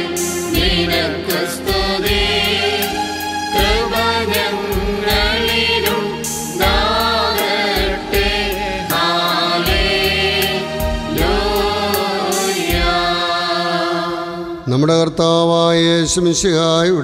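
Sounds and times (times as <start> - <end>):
instrumental backing with beat: 0.0 - 13.4
choir singing a hymn: 0.0 - 14.7.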